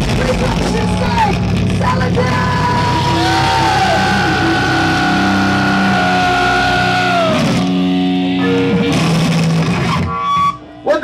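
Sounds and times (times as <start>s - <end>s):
heavy metal band playing: 0.0s - 11.0s
guitar note sliding down: 0.6s - 10.9s.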